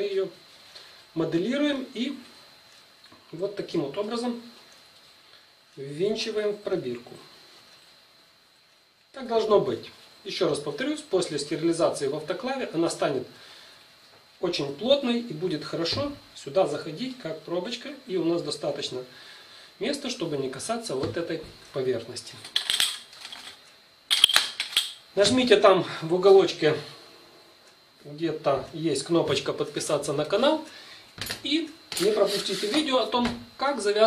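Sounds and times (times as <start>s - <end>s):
thin high-pitched whine: 0.0s - 34.0s
glass test tubes clinking: 22.4s - 25.0s.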